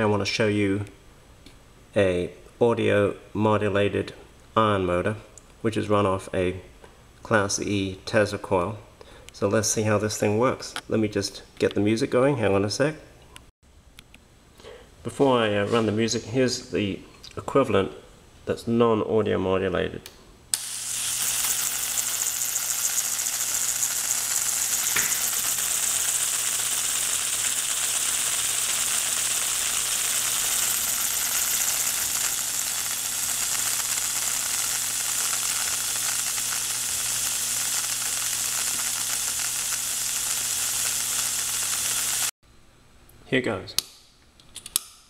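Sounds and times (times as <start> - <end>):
tesla coil sizzling hiss: 20.6 - 42.3.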